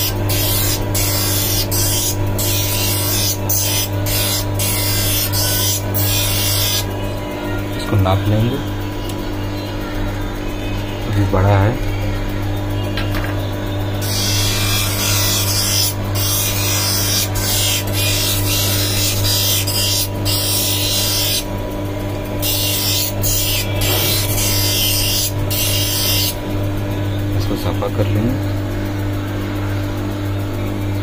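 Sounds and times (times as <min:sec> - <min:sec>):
motor humming: 0:00.0 - 0:31.0.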